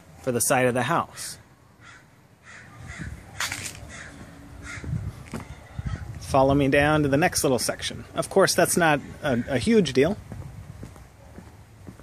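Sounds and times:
bird harsh calls: 0:01.1 - 0:06.2.

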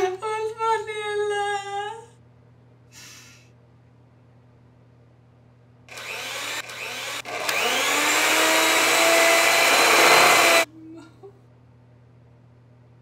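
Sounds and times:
small electric motor whining: 0:05.9 - 0:10.7.

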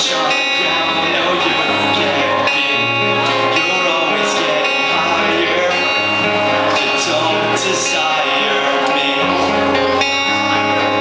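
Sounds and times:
acoustic guitar strumming: 0:00.0 - 0:11.0
man singing into a microphone: 0:00.0 - 0:11.0.

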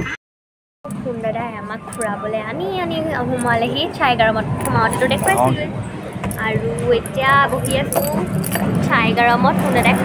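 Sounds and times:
woman talking: 0:00.9 - 0:05.7, 0:06.3 - 0:10.0
low steady hum: 0:00.9 - 0:10.0
high-pitched clinks: 0:07.6 - 0:08.8.

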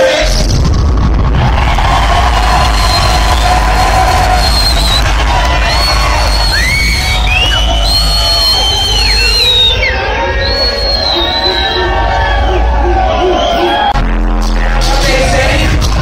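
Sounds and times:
hip-hop beat with heavy bass: 0:00.0 - 0:16.0
crowd shouting: 0:01.2 - 0:14.0
high cries from audience: 0:01.4 - 0:14.0.

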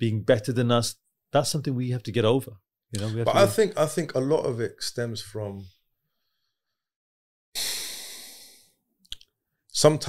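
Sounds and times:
breath into microphone: 0:07.6 - 0:08.8.

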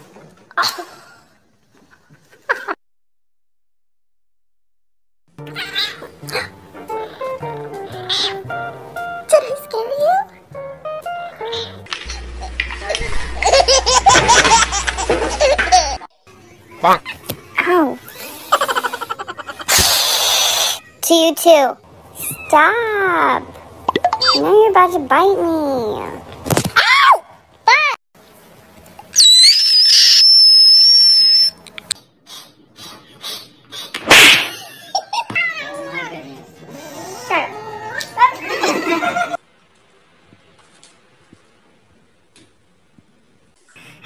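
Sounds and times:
person laughing hard: 0:13.4 - 0:16.0
high-pitched whistle-like tone: 0:29.2 - 0:31.6.

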